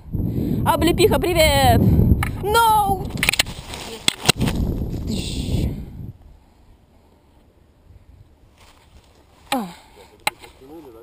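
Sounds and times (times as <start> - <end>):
wind rumbling over microphone: 0.0 - 6.4.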